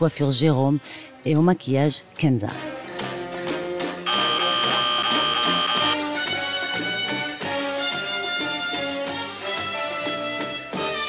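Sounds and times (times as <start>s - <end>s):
background music: 0.0s - 11.0s
electronic warning buzzer: 4.1s - 6.0s.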